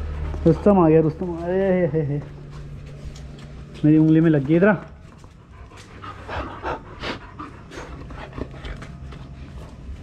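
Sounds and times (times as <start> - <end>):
dog panting: 0.0 - 1.3, 4.8 - 10.0.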